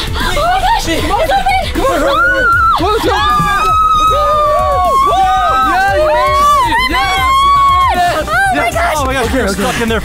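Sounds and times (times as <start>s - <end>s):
people shouting and cheering: 0.0s - 10.0s.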